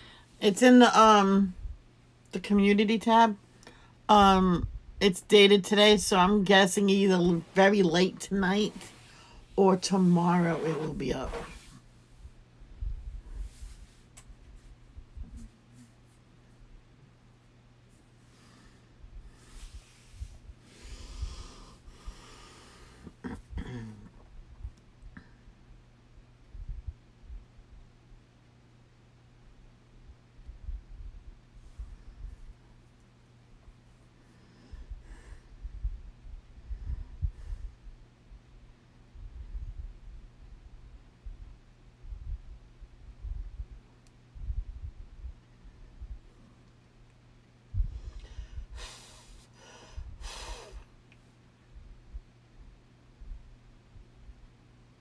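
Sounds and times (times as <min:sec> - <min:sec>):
woman breathing: 0:00.0 - 0:00.4, 0:03.6 - 0:04.0, 0:08.8 - 0:09.6, 0:18.3 - 0:24.0, 0:34.2 - 0:36.0, 0:47.7 - 0:50.9.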